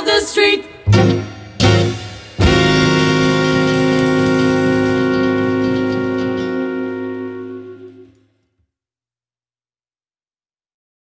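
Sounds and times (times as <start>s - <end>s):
percussive hits: 0.9s - 6.6s
jazz band held chord: 0.9s - 8.2s.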